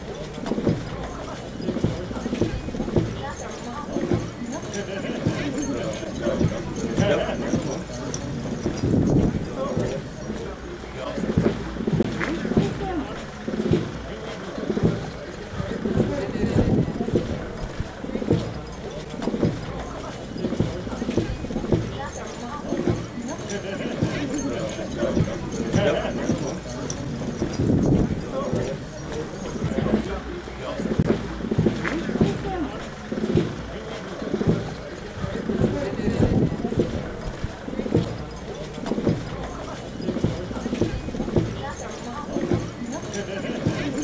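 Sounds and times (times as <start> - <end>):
crowd talking: 0.0 - 44.0
men chattering: 0.0 - 44.0.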